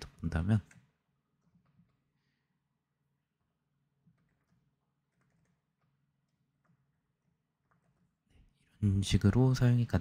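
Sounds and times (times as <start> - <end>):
faint typing on keyboard: 0.1 - 2.4, 3.0 - 8.8.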